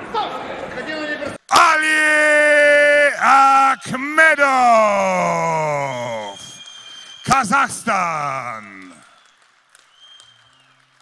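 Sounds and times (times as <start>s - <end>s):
man crying out: 1.5s - 6.5s.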